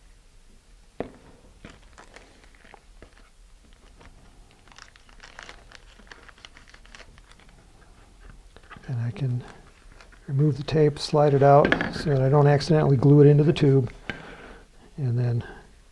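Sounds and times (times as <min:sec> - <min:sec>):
tape and paper crinkling: 0:01.6 - 0:10.4.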